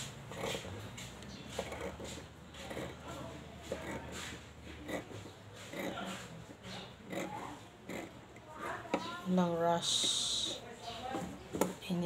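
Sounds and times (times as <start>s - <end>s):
scissors cutting cloth: 0.3s - 9.2s.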